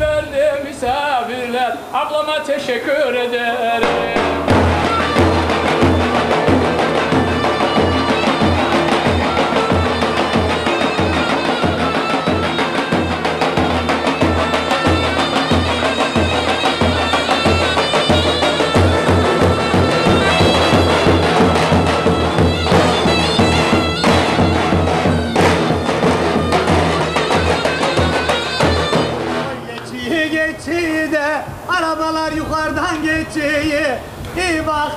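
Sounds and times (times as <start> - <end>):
shawm playing melody: 3.7 - 31.6
large bass drums beat: 3.8 - 29.4.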